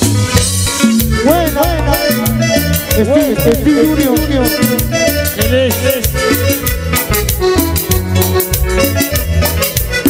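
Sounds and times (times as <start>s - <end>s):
latin dance band playing: 0.0s - 10.0s.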